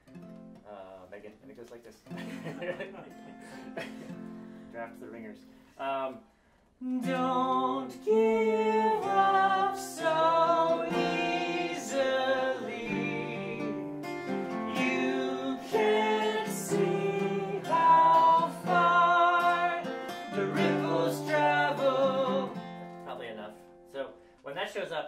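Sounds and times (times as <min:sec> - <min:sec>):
strummed acoustic guitar: 0:02.0 - 0:05.7, 0:06.9 - 0:24.0
man singing: 0:06.8 - 0:13.8, 0:14.7 - 0:22.6.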